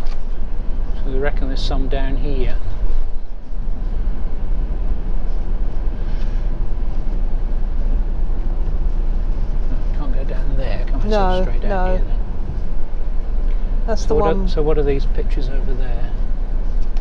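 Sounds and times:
engine and road noise rumble: 0.0 - 17.0.

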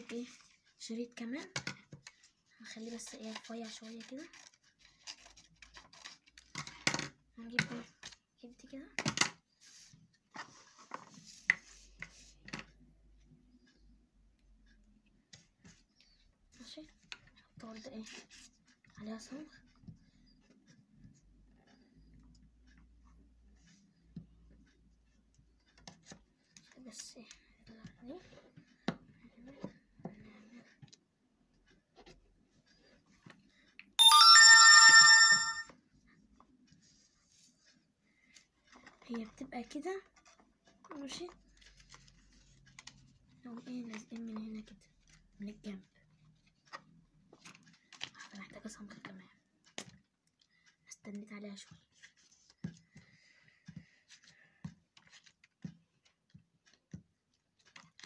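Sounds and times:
electronic chime: 34.0 - 35.7.

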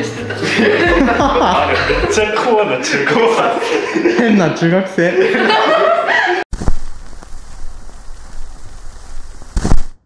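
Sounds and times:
steady rain hiss: 6.6 - 9.9.

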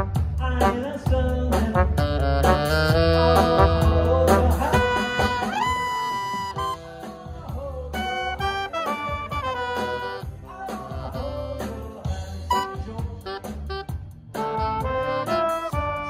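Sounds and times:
jazz band playing: 0.0 - 16.0
trumpet played close by: 1.8 - 7.2, 8.0 - 10.3, 12.5 - 16.0.

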